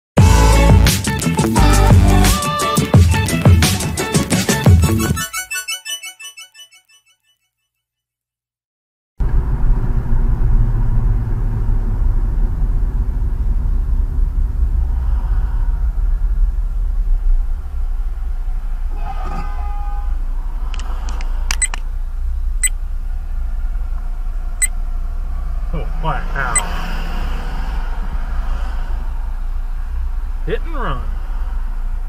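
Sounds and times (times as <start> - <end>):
car engine rumble: 9.2 - 32.0
road noise inside car: 9.2 - 32.0
sharp clicks: 20.7 - 21.9.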